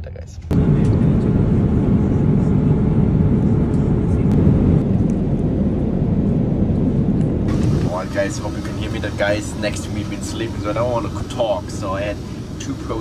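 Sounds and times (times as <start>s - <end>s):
jet engines droning: 0.4s - 13.0s.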